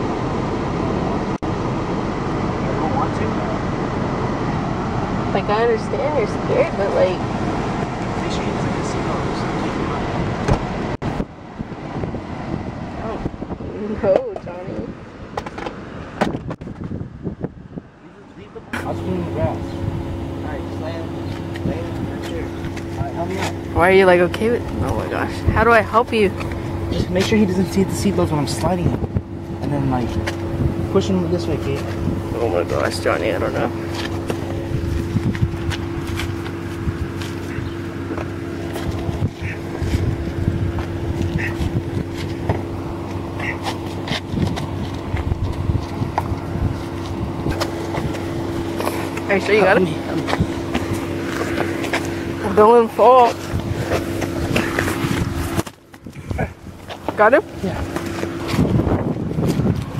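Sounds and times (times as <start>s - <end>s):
steady low hum: 0.0s - 59.9s
camera handling rumbling and rustling: 15.3s - 17.5s, 33.7s - 49.3s, 50.0s - 52.4s, 53.3s - 59.9s.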